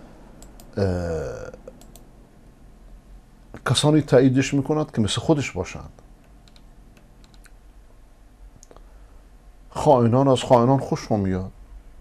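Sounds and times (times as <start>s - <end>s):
low steady room hum: 0.0s - 12.0s
faint quick clicks: 1.7s - 2.1s, 8.6s - 8.9s.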